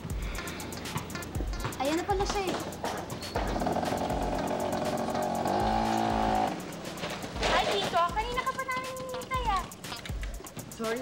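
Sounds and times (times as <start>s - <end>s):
background music with steady beat: 0.0s - 11.0s
car tyres screeching: 2.7s - 8.0s.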